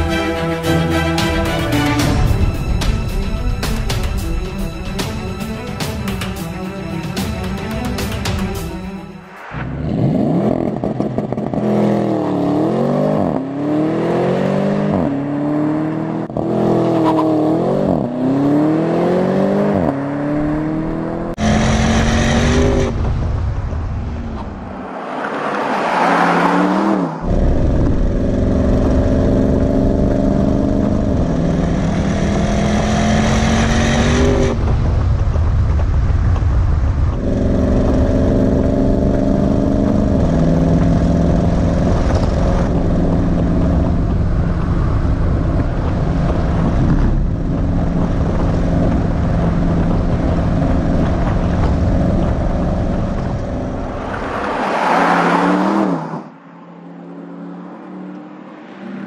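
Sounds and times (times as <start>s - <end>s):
rushing pass: 0.0s - 11.9s, 18.3s - 30.0s, 31.8s - 59.0s
car engine accelerating with upshifts: 9.5s - 23.0s, 24.2s - 35.6s, 36.3s - 59.0s.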